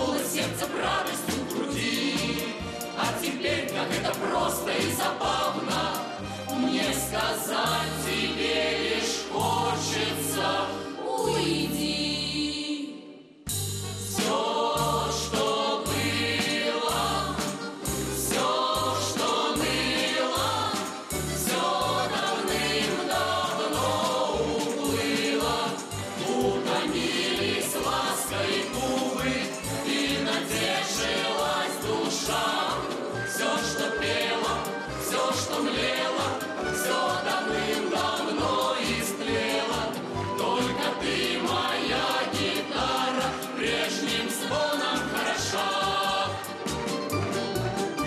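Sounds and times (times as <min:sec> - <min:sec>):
choir singing folk song: 0:00.0 - 0:48.0.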